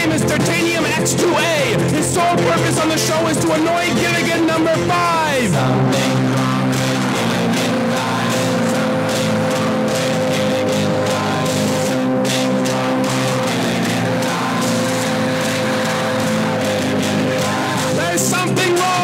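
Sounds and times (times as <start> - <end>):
steady drum beat: 0.0 - 19.0
sustained guitar chords: 0.0 - 19.0.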